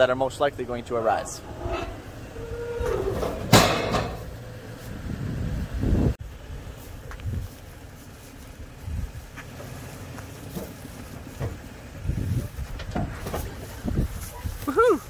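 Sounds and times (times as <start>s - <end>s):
loud rumble: 0.6s - 6.2s
wind buffeting microphone: 1.2s - 7.6s, 8.7s - 9.4s, 11.8s - 14.9s.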